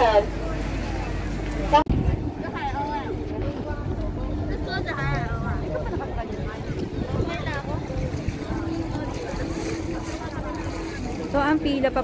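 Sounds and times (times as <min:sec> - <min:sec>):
crowd voices: 0:00.0 - 0:12.0
wind on microphone: 0:01.8 - 0:12.0.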